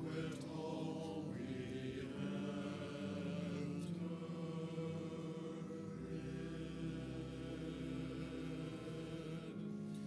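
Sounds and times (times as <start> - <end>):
choir singing held chords: 0.0 - 10.0
pipe organ: 0.0 - 10.0.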